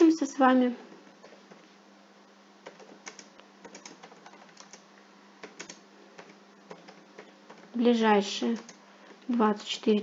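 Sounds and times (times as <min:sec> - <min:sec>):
typing on computer keyboard: 0:02.6 - 0:04.8, 0:05.4 - 0:07.8.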